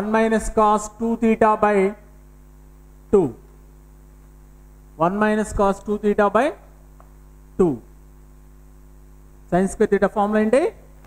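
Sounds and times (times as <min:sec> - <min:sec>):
man speaking: 0:00.0 - 0:02.1, 0:03.1 - 0:03.5, 0:05.0 - 0:06.7, 0:07.6 - 0:07.9, 0:09.5 - 0:10.9
electrical mains hum: 0:00.0 - 0:11.0.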